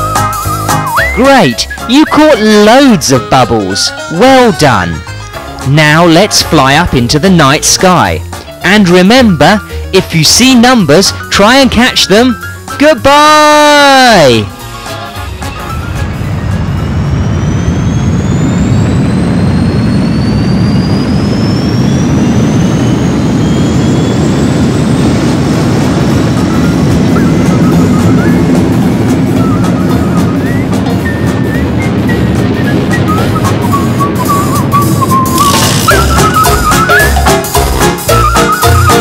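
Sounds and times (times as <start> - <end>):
thin rising whine: 0.0 - 9.8, 13.8 - 39.0
jet-like rushing roar: 13.9 - 39.0.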